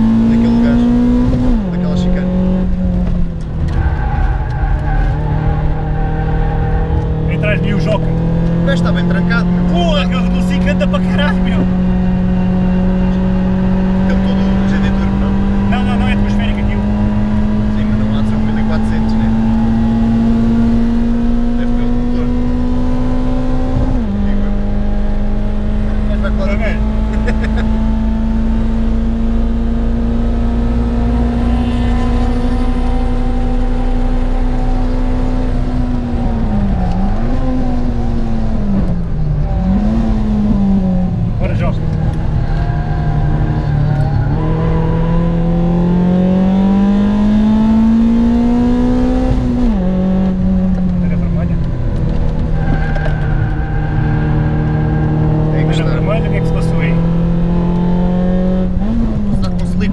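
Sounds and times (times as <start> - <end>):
race car engine at high revs: 0.0 - 59.9.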